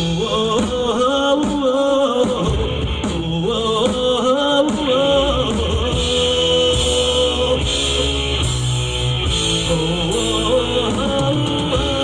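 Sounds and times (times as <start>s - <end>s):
lead singer singing: 0.0s - 12.0s
rock band playing live: 0.0s - 12.0s.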